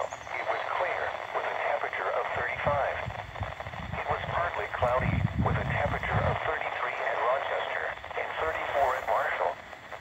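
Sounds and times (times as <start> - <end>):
faint hiss: 0.0 - 10.0
synthesized voice on radio speaker: 0.0 - 10.0.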